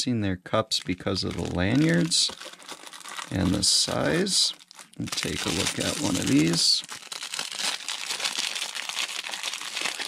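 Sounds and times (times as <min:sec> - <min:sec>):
plastic wrapping crinkling: 0:00.8 - 0:10.0.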